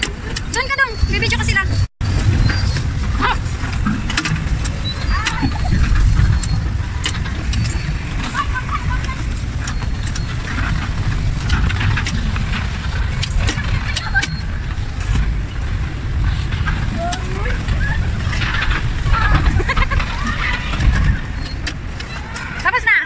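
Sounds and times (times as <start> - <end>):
knocks and clicks: 0.0 - 22.7
bumper car rumbling: 0.0 - 23.0.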